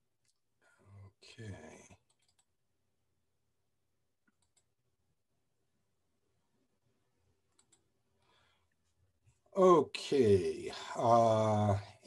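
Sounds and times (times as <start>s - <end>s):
man speaking: 0.9s - 2.0s, 9.6s - 12.0s
computer mouse clicks: 2.0s - 2.5s, 4.3s - 4.7s, 7.5s - 7.8s.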